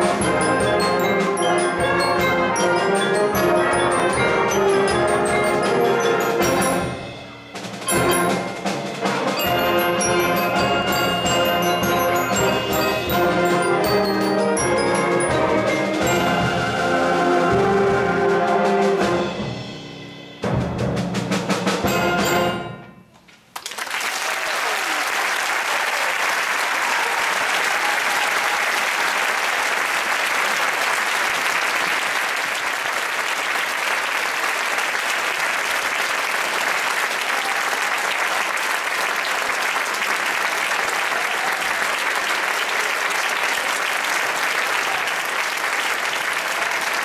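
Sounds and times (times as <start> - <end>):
audience applauding: 23.5 - 47.0.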